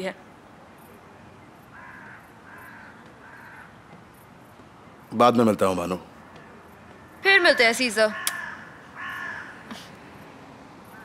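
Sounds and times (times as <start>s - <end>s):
faint outdoor background noise: 0.0s - 11.0s
bird harsh call: 7.4s - 9.9s.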